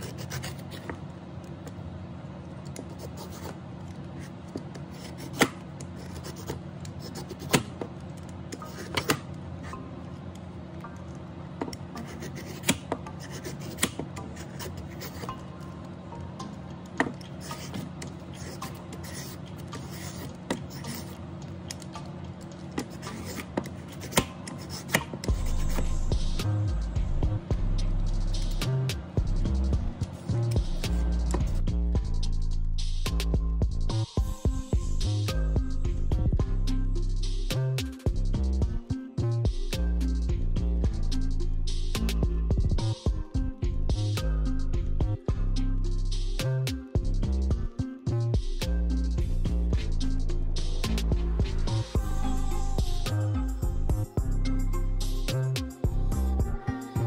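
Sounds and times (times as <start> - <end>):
soft background music: 4.9 - 57.0.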